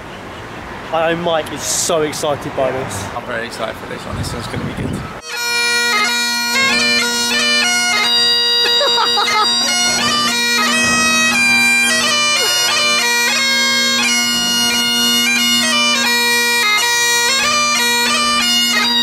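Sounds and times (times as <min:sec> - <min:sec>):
bagpipes playing melody over drone: 0:05.2 - 0:19.0.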